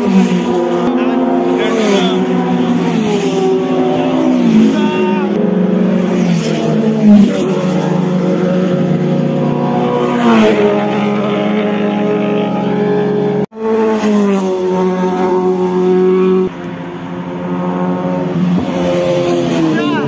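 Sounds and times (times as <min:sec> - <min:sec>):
motorcycles passing at speed: 0:00.0 - 0:20.0.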